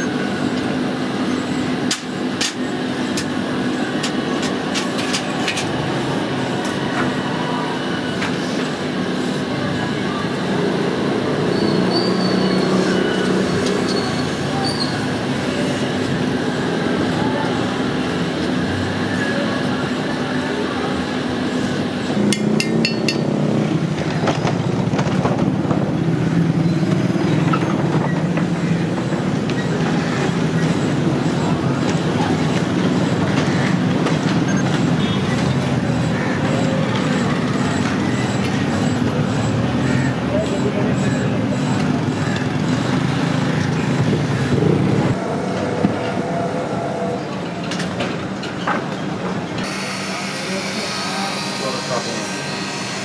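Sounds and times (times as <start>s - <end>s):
loud low mechanical drone: 0.0s - 53.0s
voices: 0.0s - 53.0s.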